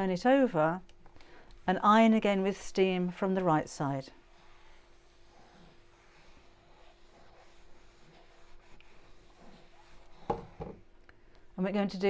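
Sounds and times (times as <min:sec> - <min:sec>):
faint steady hum: 0:00.0 - 0:12.0
iron rubbing over fabric: 0:03.2 - 0:10.7.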